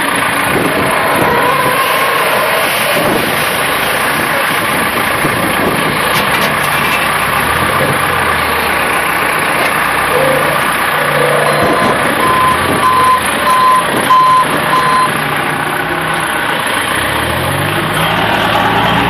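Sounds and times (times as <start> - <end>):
forklift engine running: 0.0 - 19.0
reversing beeper: 10.1 - 15.2.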